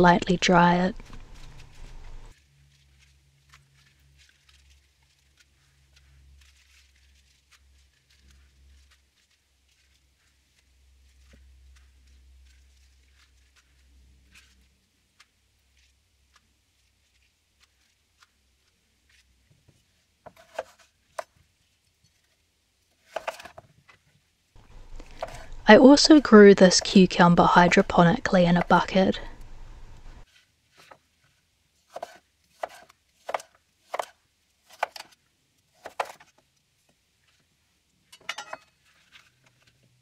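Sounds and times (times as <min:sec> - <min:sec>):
lettuce leaves rustling: 0:00.8 - 0:20.8
knife slicing on wooden board: 0:20.3 - 0:20.9, 0:23.1 - 0:23.6, 0:24.8 - 0:25.6, 0:31.9 - 0:35.2, 0:35.8 - 0:36.3.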